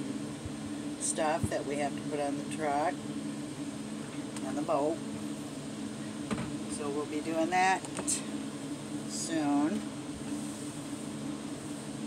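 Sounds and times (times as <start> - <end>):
fan motor hum: 0.0 - 12.0.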